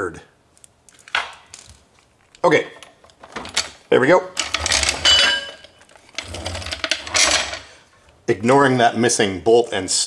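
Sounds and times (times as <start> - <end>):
metal tool clanking down: 4.4 - 7.7.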